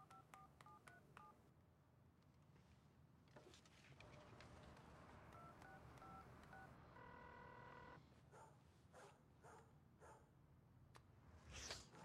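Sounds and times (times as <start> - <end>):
phone keypad dialing beeps: 0.0 - 1.4, 5.3 - 7.9.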